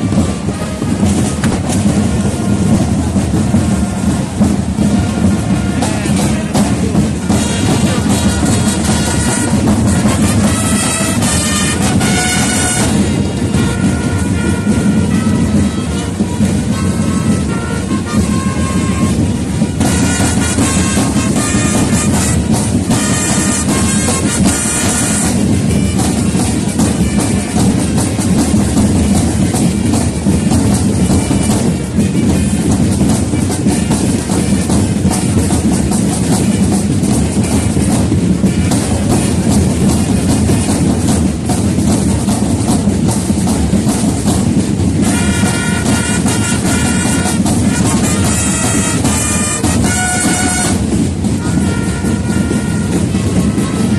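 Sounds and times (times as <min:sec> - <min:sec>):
marching drums rolling: 0:00.0 - 0:53.9
wind instruments holding notes: 0:00.0 - 0:53.9.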